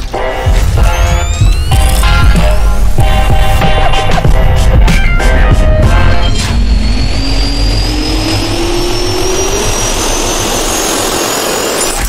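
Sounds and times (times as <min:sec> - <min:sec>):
jet turbine whine: 0:00.0 - 0:12.0
loud rushing roar: 0:00.0 - 0:12.0.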